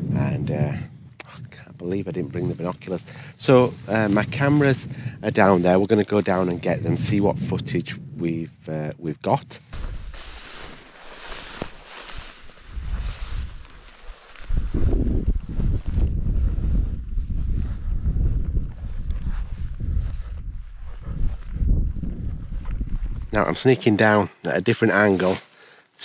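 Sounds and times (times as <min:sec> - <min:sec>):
wind buffeting microphone: 0:00.0 - 0:24.1.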